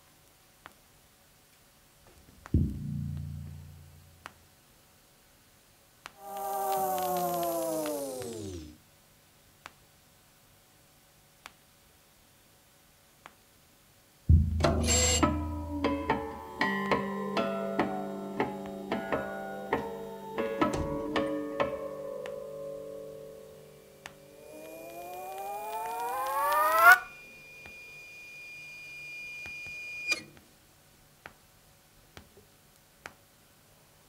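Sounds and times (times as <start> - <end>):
experimental turntable music: 24.2 - 30.0
high steady beep: 25.5 - 30.2.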